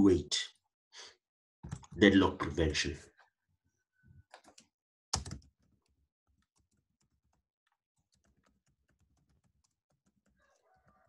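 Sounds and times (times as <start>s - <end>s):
keyboard typing: 4.3s - 11.0s.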